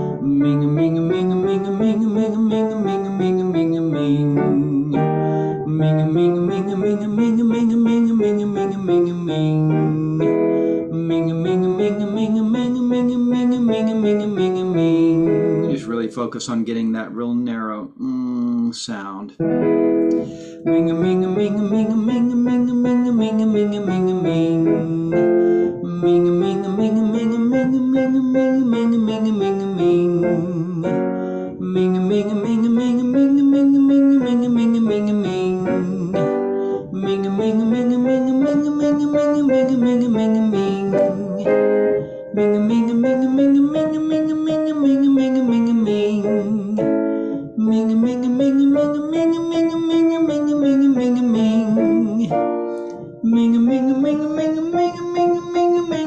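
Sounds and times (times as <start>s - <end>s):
piano accompaniment: 0.0s - 18.0s, 18.9s - 56.0s
person humming: 0.0s - 19.3s, 20.1s - 56.0s.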